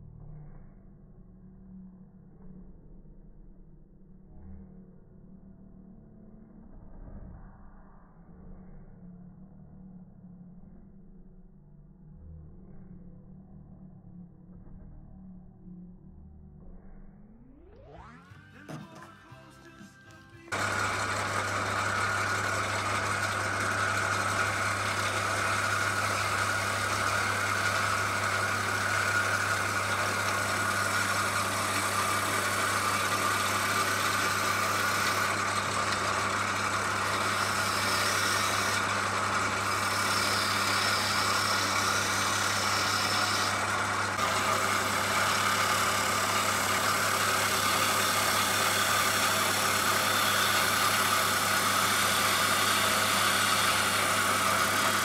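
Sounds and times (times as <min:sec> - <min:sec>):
turning tool cutting wood: 0:17.9 - 0:55.0
lathe motor hum: 0:20.4 - 0:55.0.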